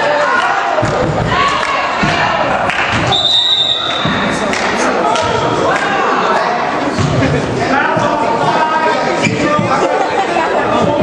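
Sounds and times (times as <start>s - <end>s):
crowd voices: 0.0s - 11.0s
referee's whistle: 3.1s - 4.2s.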